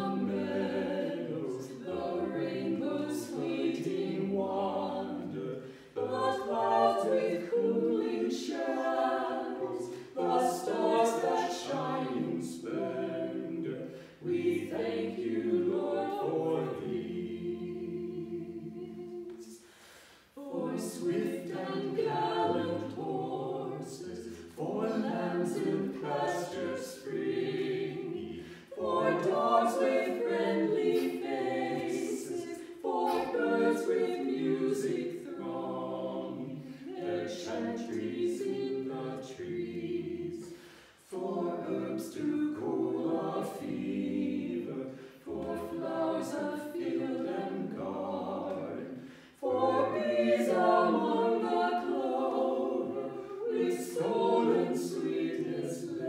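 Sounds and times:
small choir singing a hymn: 0.0s - 56.0s.

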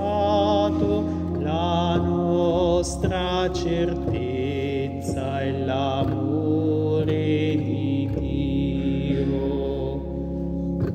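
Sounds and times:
church organ chord: 0.0s - 10.9s
deep organ bass note: 0.0s - 10.9s.

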